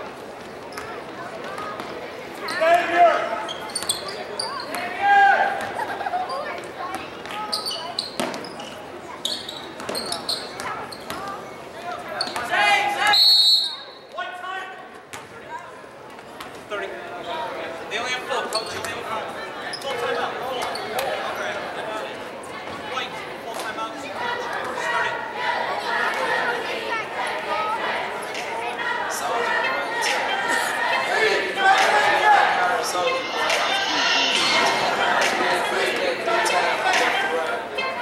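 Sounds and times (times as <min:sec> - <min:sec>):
referee's whistle: 0:13.0 - 0:14.0.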